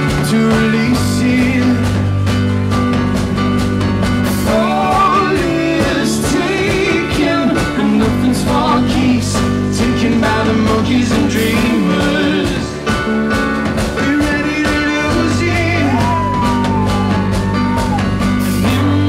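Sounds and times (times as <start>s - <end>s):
man singing: 0.0s - 2.3s, 4.3s - 13.1s, 13.9s - 17.7s, 18.3s - 19.0s
drum kit with cymbals: 0.0s - 19.0s
keyboard: 0.0s - 19.0s.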